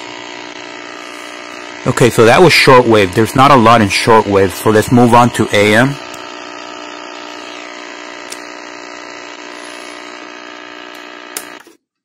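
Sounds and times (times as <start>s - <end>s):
radio speaker buzzing hum: 0.0s - 11.7s.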